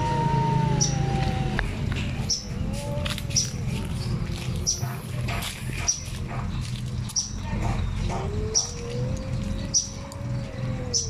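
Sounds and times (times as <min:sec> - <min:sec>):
cat yowls: 0:00.0 - 0:01.9.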